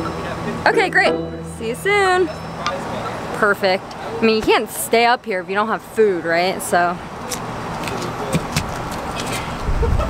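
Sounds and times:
steady outdoor background noise: 0.0 - 10.0.

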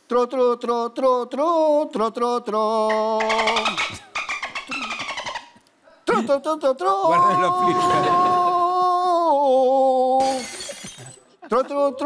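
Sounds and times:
woman laughing: 7.0 - 8.8.

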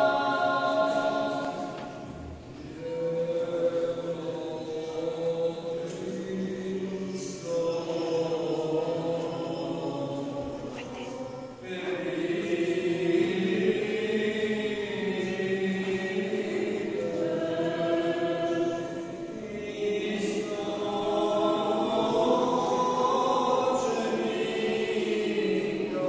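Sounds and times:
choir singing a liturgical chant: 0.0 - 26.0.

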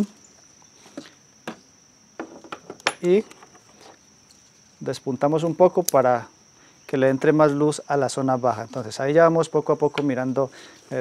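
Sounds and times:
high insect trill: 0.0 - 11.0.

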